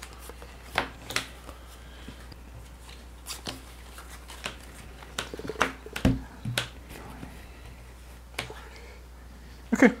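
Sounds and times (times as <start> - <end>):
playing cards clicking: 2.9 - 6.8.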